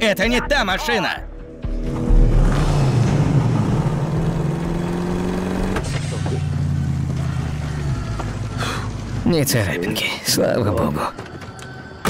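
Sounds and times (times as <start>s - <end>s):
car engine running: 1.7s - 9.3s.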